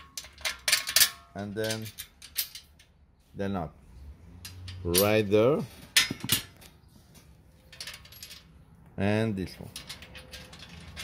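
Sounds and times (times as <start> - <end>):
small metal clinks: 7.6 - 8.6.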